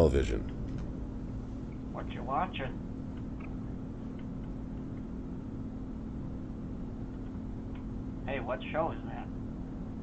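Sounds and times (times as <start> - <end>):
electrical hum and hiss: 0.0 - 10.0.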